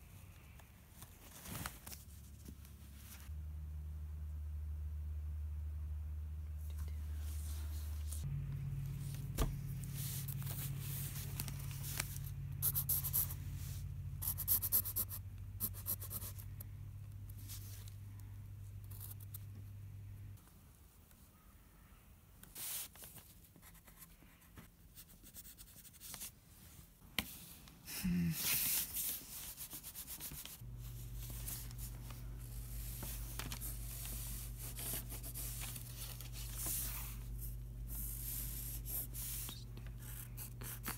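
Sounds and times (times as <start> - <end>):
low steady hum: 0.0 - 22.4, 23.0 - 40.9
low hum: 2.9 - 20.4.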